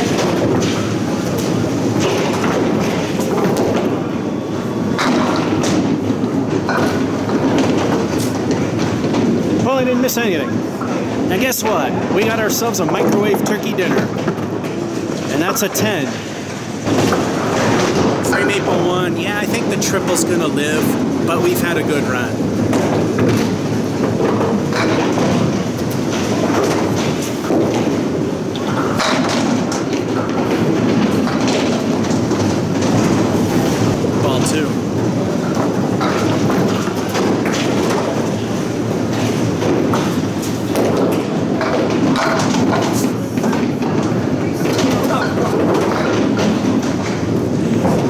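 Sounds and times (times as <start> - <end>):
balls rolling on wooden lanes: 0.0 - 48.0
pins and pinsetter clattering: 0.0 - 48.0.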